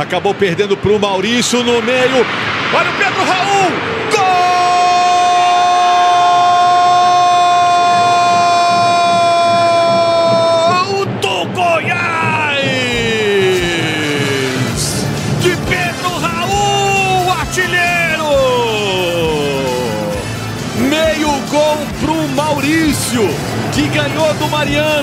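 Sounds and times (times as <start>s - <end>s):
commentator shouting goal: 2.8s - 20.2s.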